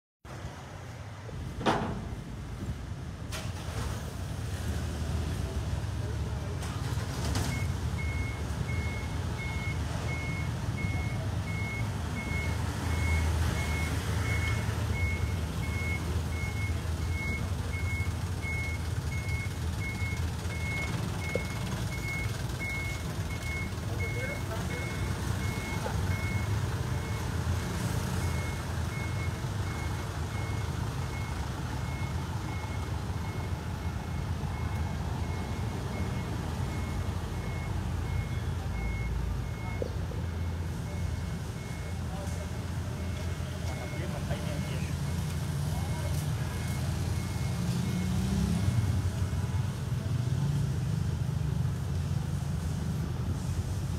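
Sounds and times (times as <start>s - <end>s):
low engine rumble: 0.3s - 53.9s
reversing alarm beeping: 7.5s - 49.0s.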